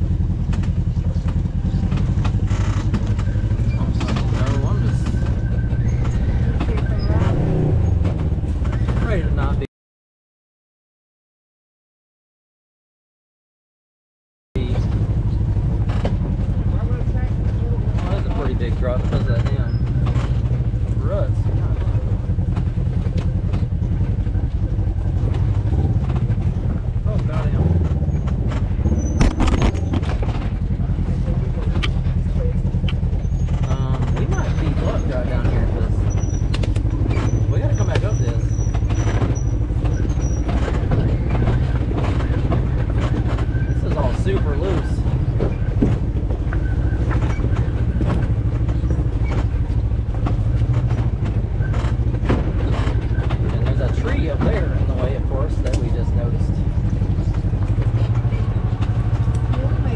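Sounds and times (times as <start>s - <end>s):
vehicle engine running at low speed: 0.0s - 9.7s, 14.6s - 59.9s
tyres and chassis knocking on rocks: 14.7s - 59.9s.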